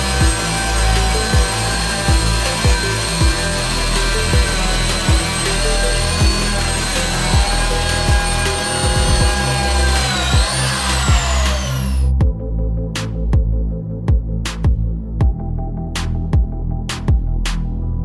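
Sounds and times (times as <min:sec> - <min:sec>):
electric hand planer cutting wood: 0:00.0 - 0:12.2
background music with beat: 0:00.0 - 0:18.0.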